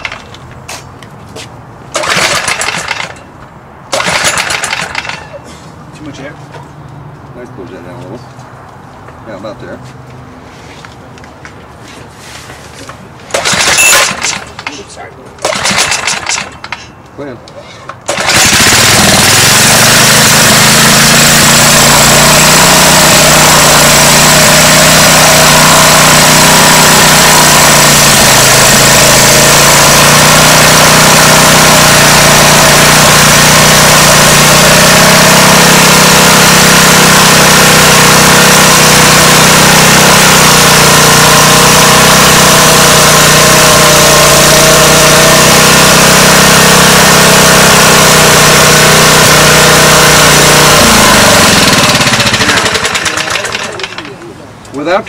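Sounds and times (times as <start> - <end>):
small engine running: 1.9 - 3.2, 3.9 - 5.3, 13.3 - 14.8, 15.4 - 16.8, 18.0 - 54.2.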